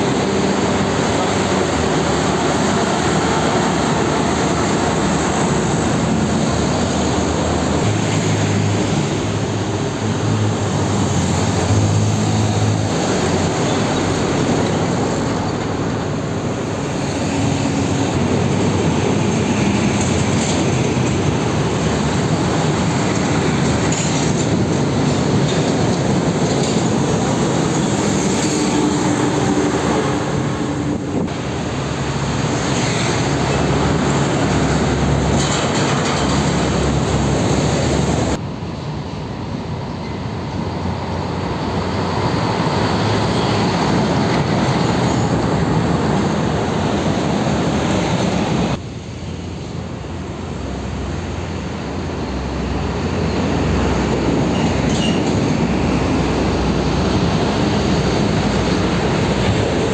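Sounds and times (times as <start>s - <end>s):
deep truck engine drone: 0.0s - 59.9s
heavy trucks passing: 0.0s - 59.9s.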